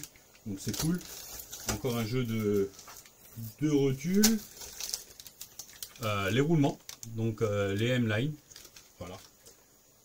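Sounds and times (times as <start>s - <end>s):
plastic packet crinkling: 0.0s - 9.6s.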